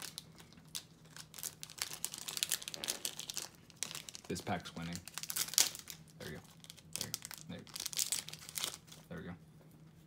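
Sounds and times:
foil wrapper crinkling: 0.0s - 9.2s.

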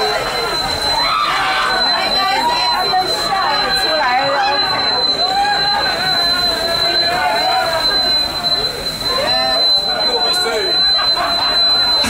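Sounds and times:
high-pitched electronic tone: 0.0s - 12.0s
indistinct voices: 0.0s - 12.0s.

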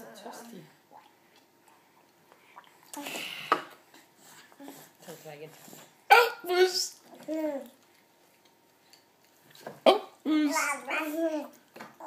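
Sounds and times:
toddler babbling: 7.1s - 7.8s, 10.3s - 11.6s.

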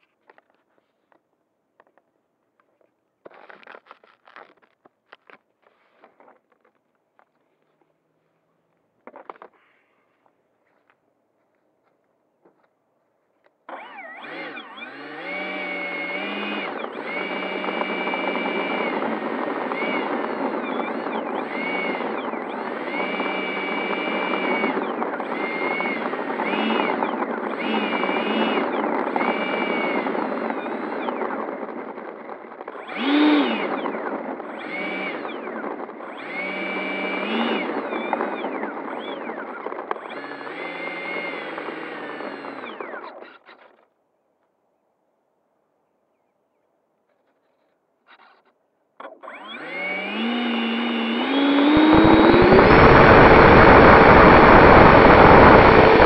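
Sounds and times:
electric ducted fan whine: 49.5s - 56.0s.

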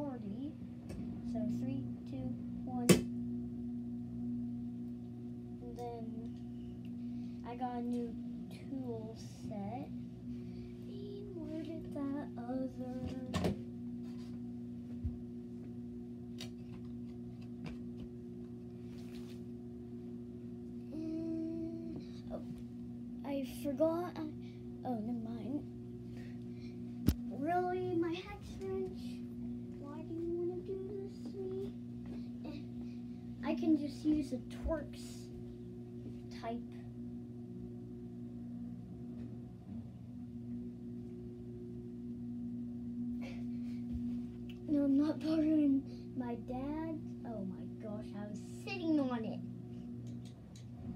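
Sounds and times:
steady low hum: 0.0s - 50.9s.

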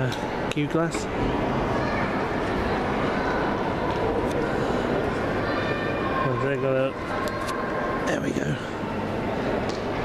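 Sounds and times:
echoing hall background din: 0.0s - 10.0s
faint distant voices: 0.0s - 10.0s.

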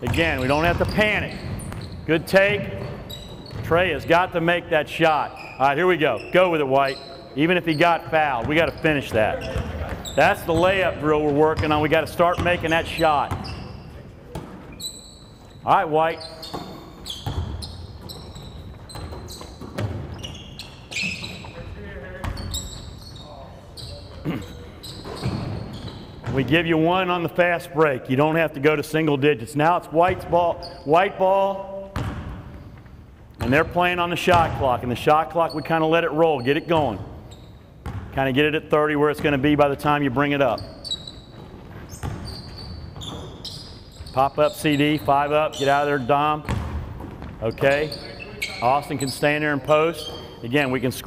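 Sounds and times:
basketball bouncing on wood floor: 0.0s - 4.0s, 8.4s - 13.6s, 16.4s - 21.6s, 31.9s - 33.6s, 34.3s - 34.6s, 37.8s - 38.2s, 40.9s - 44.1s, 46.4s - 47.6s
sneakers squeaking: 0.0s - 27.3s, 29.9s - 51.0s
basketball bouncing on hardwood: 16.5s - 20.2s, 32.0s - 32.6s, 41.4s - 42.3s, 46.5s - 47.4s.

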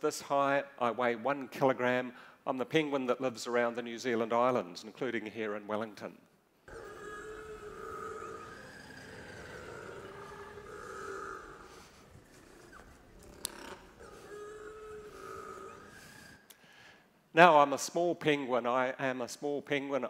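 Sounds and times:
penguin calls: 6.7s - 16.5s.

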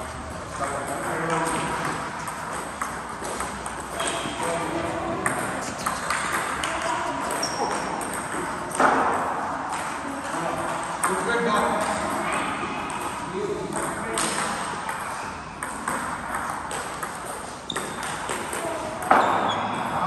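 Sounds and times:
table tennis balls clicking: 0.8s - 4.5s, 5.2s - 10.0s, 10.6s - 19.5s.

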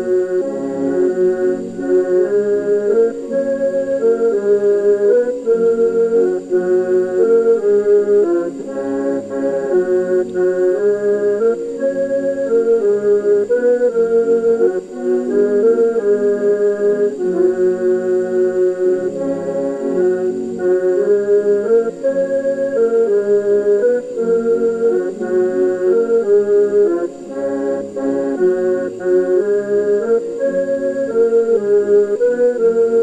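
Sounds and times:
piano accordion: 0.0s - 33.0s
pipe organ: 0.0s - 33.0s.

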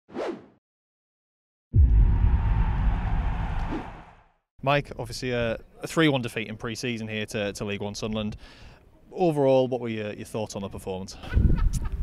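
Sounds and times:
deep boom with rumbling hissy tail: 1.7s - 4.2s.

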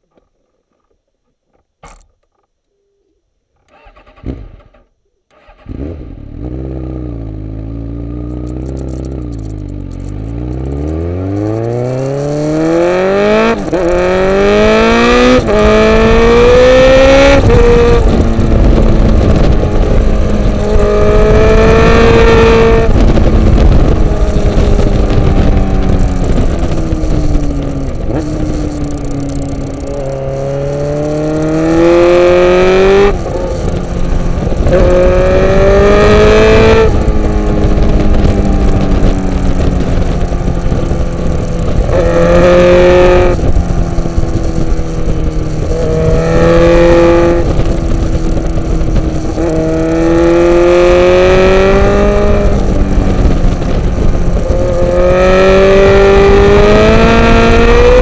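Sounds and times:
motorcycle engine revving: 3.7s - 58.0s
wind noise on microphone: 5.4s - 58.0s.

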